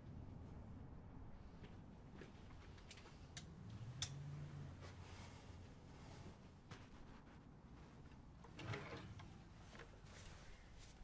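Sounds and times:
rustle of clothes: 0:04.4 - 0:11.0.

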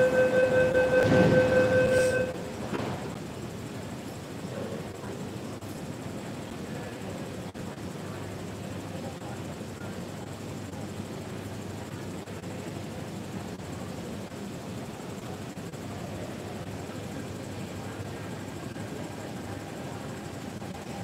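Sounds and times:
metro station background noise: 0:00.0 - 0:21.0.

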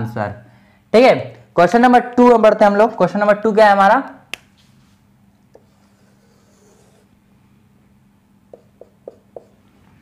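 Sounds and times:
marker tap: 0:08.5 - 0:09.6.

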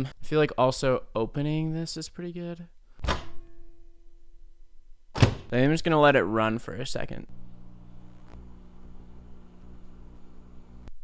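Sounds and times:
microwave humming: 0:07.3 - 0:11.0.

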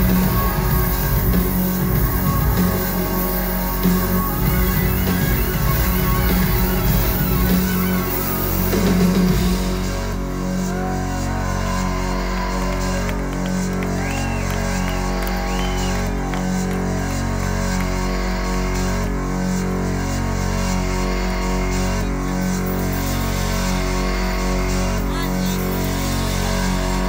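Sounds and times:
electronic drone with low pulse: 0:00.0 - 0:27.0.

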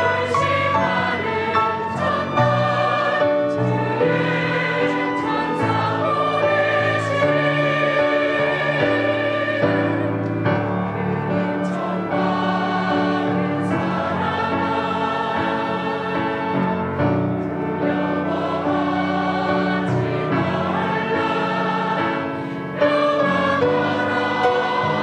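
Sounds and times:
flute playing: 0:00.0 - 0:10.0
choir singing in parts: 0:00.0 - 0:25.0.

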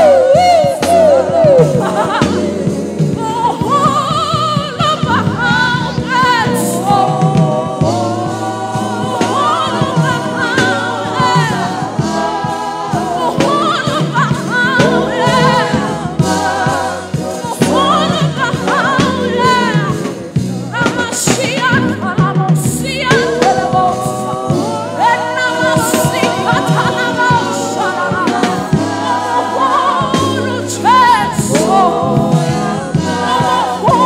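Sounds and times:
backing vocalists singing: 0:00.0 - 0:34.0
woman lead singer: 0:00.0 - 0:34.0.

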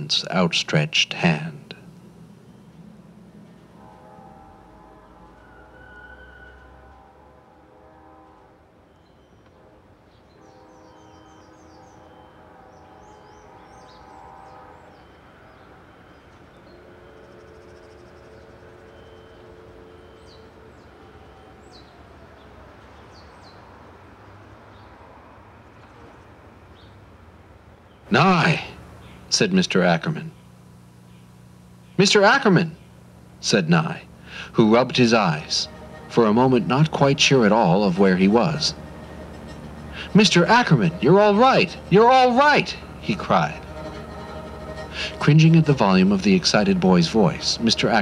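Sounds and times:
held horn chords: 0:00.0 - 0:21.7, 0:28.1 - 0:48.0
distant traffic rumble: 0:00.0 - 0:48.0.

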